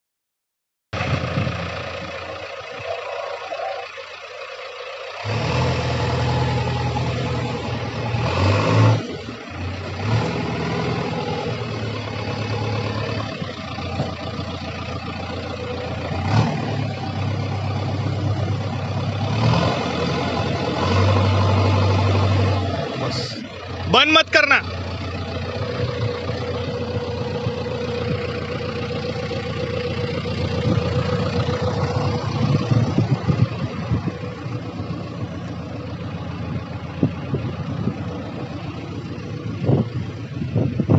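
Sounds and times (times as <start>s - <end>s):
backhoe diesel engine working: 0.9s - 40.9s.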